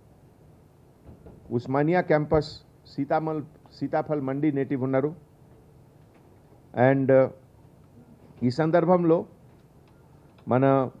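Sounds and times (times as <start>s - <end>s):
man speaking into a microphone: 1.5s - 5.2s, 6.8s - 7.4s, 8.4s - 9.3s, 10.4s - 11.0s.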